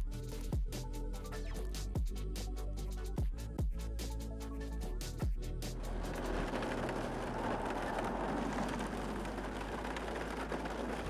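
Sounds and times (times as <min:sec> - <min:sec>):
tyre and wind noise: 0:05.8 - 0:11.0.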